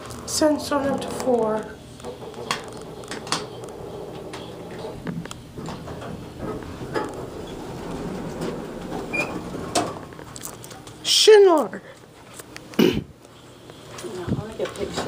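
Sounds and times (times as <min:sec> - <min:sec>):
elevator car hum and rumble: 0:00.4 - 0:10.4.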